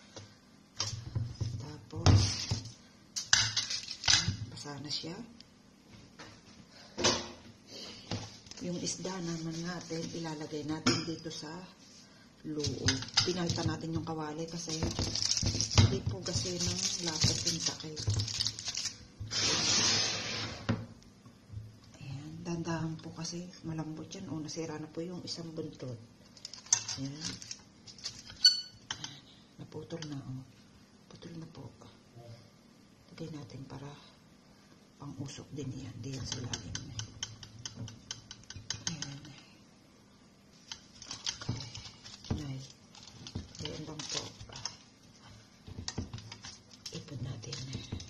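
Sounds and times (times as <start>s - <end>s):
aluminium foil crinkling: 3.2s - 4.4s, 12.6s - 19.6s, 26.2s - 28.5s, 40.5s - 48.0s.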